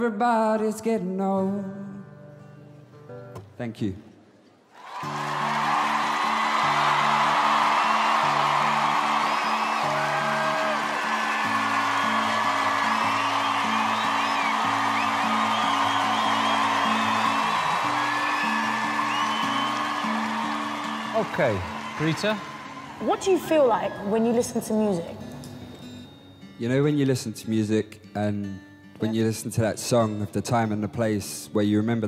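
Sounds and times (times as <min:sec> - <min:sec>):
audience cheering and whistling: 0:04.8 - 0:24.4.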